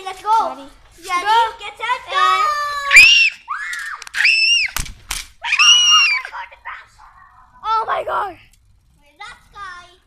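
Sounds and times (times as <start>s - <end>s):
girls shouting: 2.1s - 4.8s, 5.4s - 8.4s
girls screaming: 2.6s - 4.8s, 5.4s - 6.5s.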